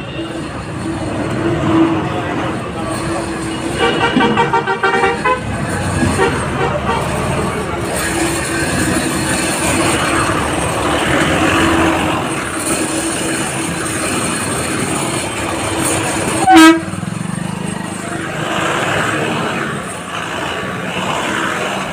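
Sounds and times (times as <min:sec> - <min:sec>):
traffic engines din: 0:00.0 - 0:21.9
car horn blast: 0:03.8 - 0:05.4, 0:16.4 - 0:17.0.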